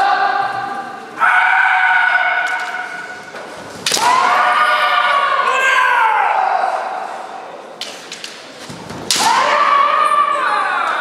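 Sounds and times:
long drawn-out shouts: 0:00.0 - 0:03.2, 0:04.0 - 0:07.3, 0:09.2 - 0:11.0.

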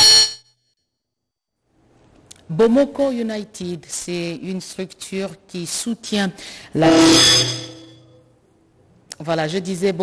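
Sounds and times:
short metallic ding: 0:00.0 - 0:00.4.

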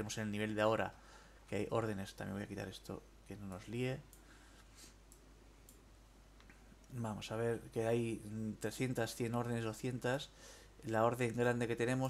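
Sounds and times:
faint computer mouse clicks: 0:04.1 - 0:04.3, 0:05.1 - 0:07.0.

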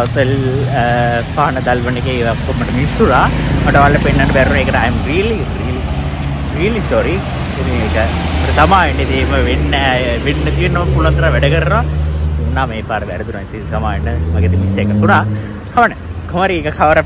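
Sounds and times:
man talking: 0:00.0 - 0:17.0
road traffic hum: 0:00.0 - 0:17.0.

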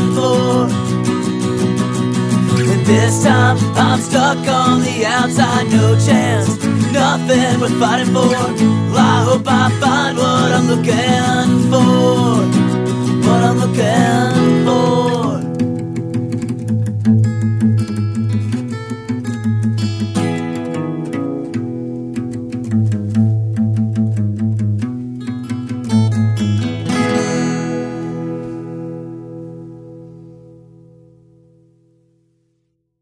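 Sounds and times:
acoustic guitar strumming: 0:00.0 - 0:31.9.

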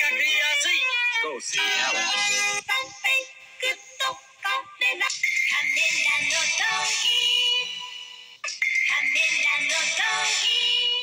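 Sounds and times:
commercial jingle with sung melody: 0:01.4 - 0:11.0.

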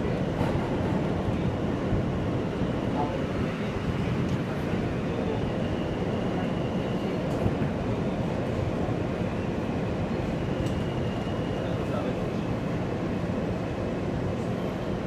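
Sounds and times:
wheels rumbling on rails: 0:00.0 - 0:15.0.

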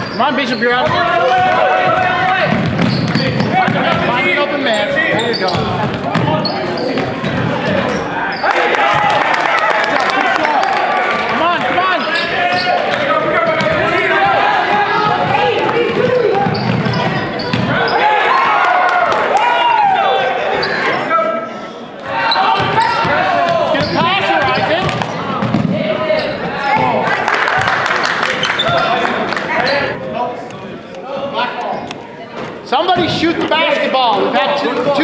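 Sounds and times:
people talking and calling: 0:00.0 - 0:35.0.

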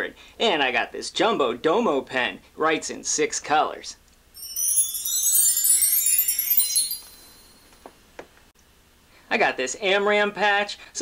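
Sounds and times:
shimmering chime sliding down: 0:04.4 - 0:07.8.

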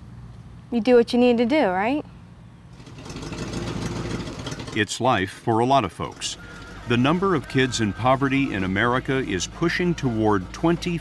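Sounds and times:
truck engine idling: 0:02.6 - 0:11.0.

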